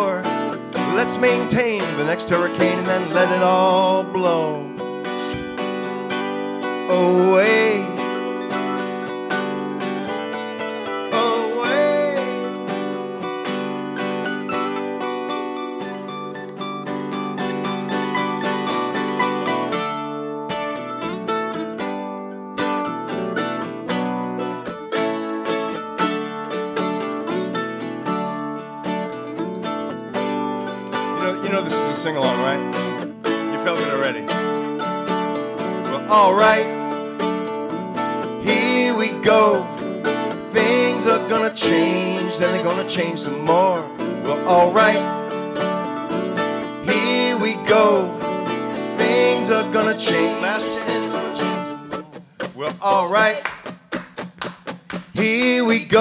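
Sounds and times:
acoustic guitar: 0.0s - 56.0s
mandolin playing: 0.0s - 56.0s.

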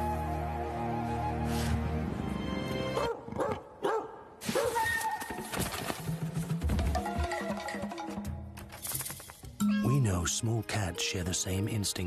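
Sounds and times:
music: 0.0s - 3.1s, 6.1s - 12.0s.

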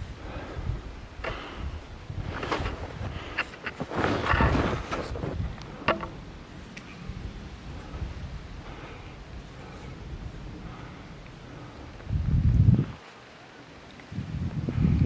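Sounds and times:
wind buffeting microphone: 0.0s - 13.1s, 14.0s - 15.0s.

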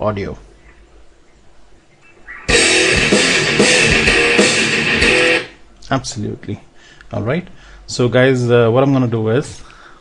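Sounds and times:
loud music: 2.5s - 5.6s.

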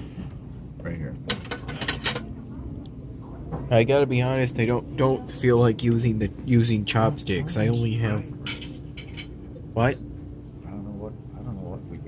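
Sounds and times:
metal cutlery clinking: 1.3s - 2.3s.

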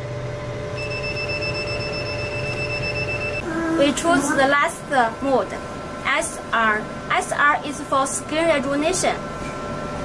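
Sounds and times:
machine hum: 0.0s - 10.0s
rapid high-pitched machine beeping: 0.8s - 3.5s.

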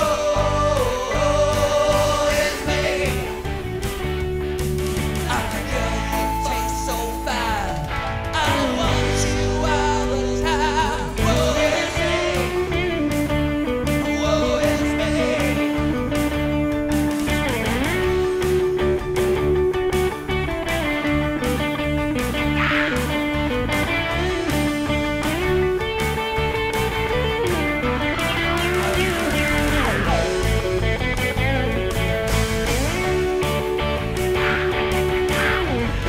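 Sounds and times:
electric guitar lead with bends: 0.0s - 36.0s
rock band playing: 0.0s - 36.0s.

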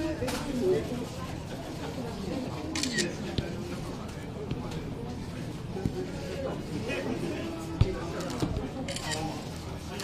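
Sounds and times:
faint voices: 0.0s - 10.0s
camera shutter clicks: 2.8s - 3.1s.

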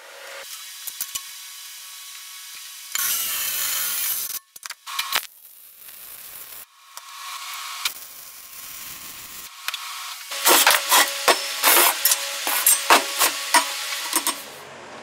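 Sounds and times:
welding arc crackling and hissing: 0.3s - 14.6s.

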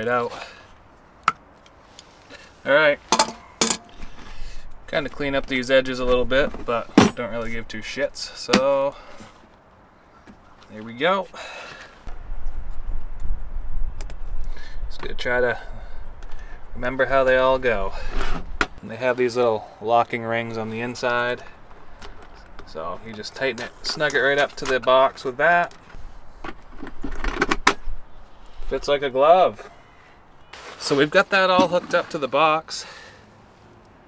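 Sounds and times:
wind buffeting microphone: 12.1s - 18.8s.

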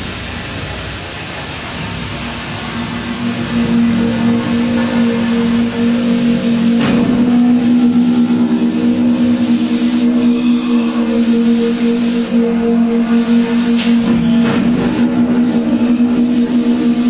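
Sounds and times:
noisy hiss: 0.0s - 17.0s
pitched drone: 2.0s - 17.0s
sharp percussion strike: 2.6s - 17.0s.

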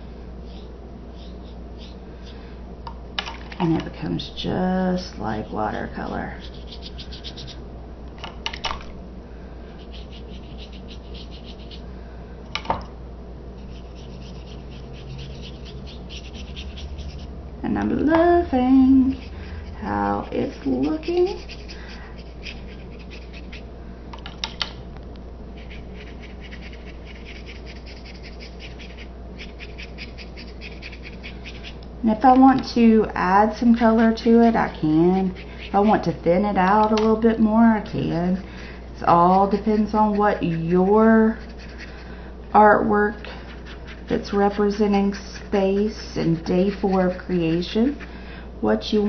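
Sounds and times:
paintbrush scrubbing on paper: 5.4s - 7.6s, 9.8s - 11.8s, 13.6s - 17.4s, 19.0s - 23.6s, 25.6s - 31.8s, 33.7s - 36.2s, 39.0s - 42.1s, 43.3s - 48.1s
paintbrush strokes on paper: 13.6s - 17.3s.

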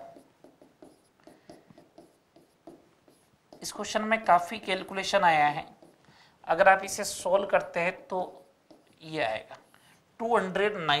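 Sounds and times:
marker pen writing on a board: 0.0s - 6.1s, 8.2s - 9.9s.

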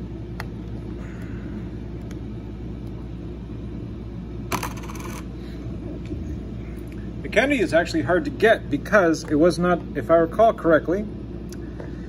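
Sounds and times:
steady low hum: 0.0s - 12.0s
coin clinking against coins: 4.5s - 5.3s.

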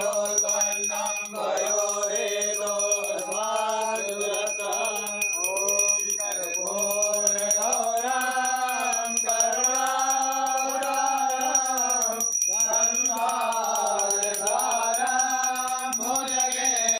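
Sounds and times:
men chanting together: 0.0s - 16.9s.

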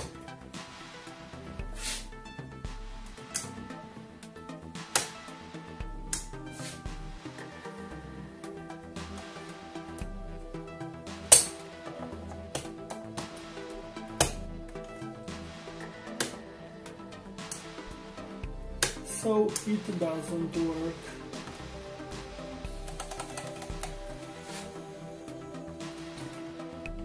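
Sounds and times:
background music with beat: 0.0s - 27.0s.

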